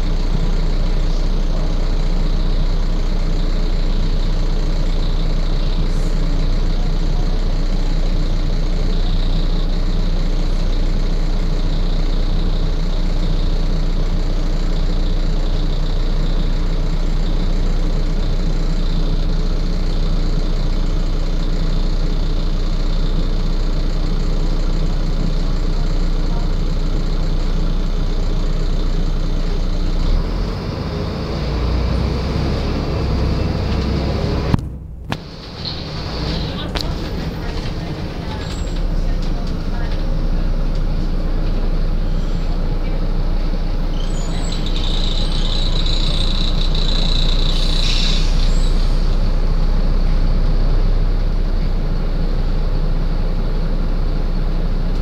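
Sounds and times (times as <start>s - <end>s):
bus diesel engine idling: 0.0s - 55.0s.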